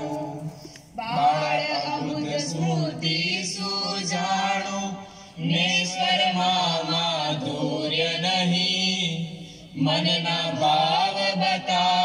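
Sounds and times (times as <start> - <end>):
group of voices singing a hymn: 0.0 - 12.0.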